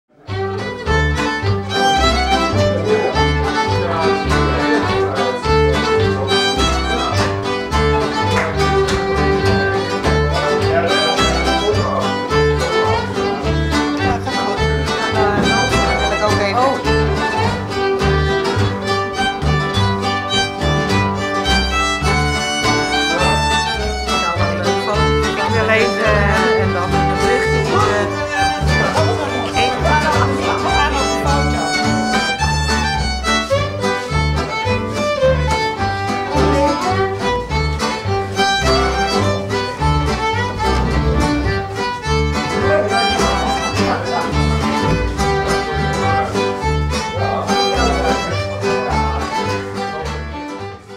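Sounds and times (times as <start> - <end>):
acoustic guitar chords: 0.1 - 50.9
double bass notes: 0.1 - 50.9
fiddle melody: 0.1 - 50.9.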